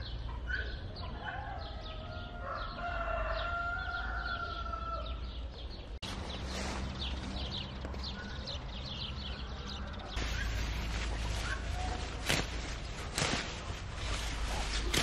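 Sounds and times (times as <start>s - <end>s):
rooster crowing: 1.6s - 5.2s.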